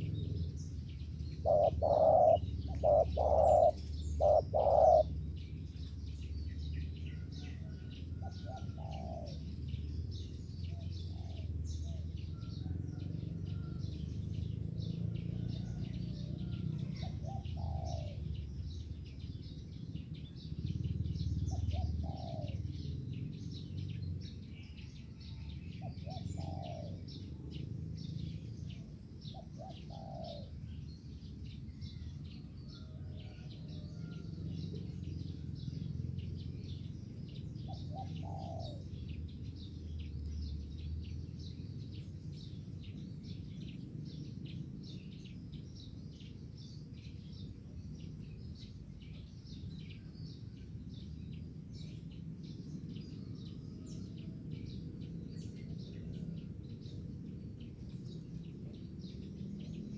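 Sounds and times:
low steady rumble: 0.0s - 59.9s
small birds chirping: 0.0s - 59.9s
doves cooing: 1.4s - 5.2s, 7.8s - 9.5s, 16.4s - 18.2s, 21.5s - 22.8s, 25.9s - 27.1s, 29.3s - 30.6s, 37.6s - 39.0s.

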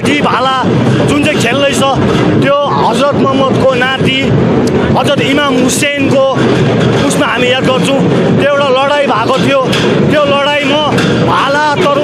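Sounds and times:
crowd noise: 0.0s - 12.0s
man shouting: 10.2s - 12.0s.

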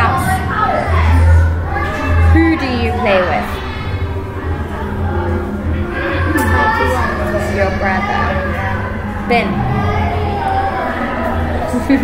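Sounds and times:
children's voices: 0.0s - 12.0s
indistinct speech: 0.0s - 12.0s
steady low hum: 0.0s - 12.0s.

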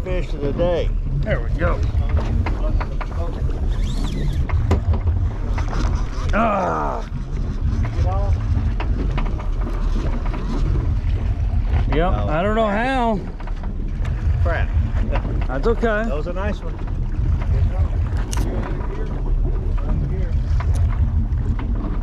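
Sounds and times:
sea noise: 0.0s - 22.0s
wind on microphone: 0.0s - 22.0s.

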